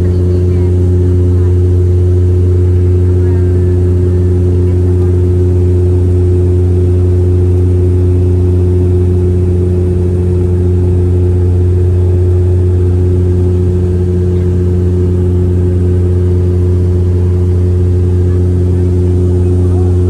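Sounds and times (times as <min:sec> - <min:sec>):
propeller aircraft cabin drone: 0:00.0 - 0:20.0.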